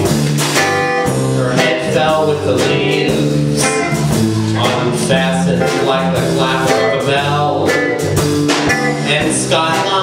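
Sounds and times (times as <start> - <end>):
electric guitar playing: 0.0 - 9.5.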